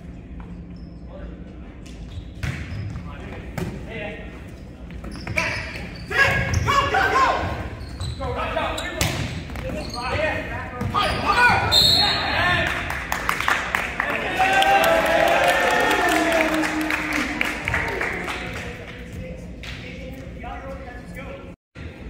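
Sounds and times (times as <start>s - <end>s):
people shouting and yelling: 6.1s - 7.7s, 14.0s - 18.0s.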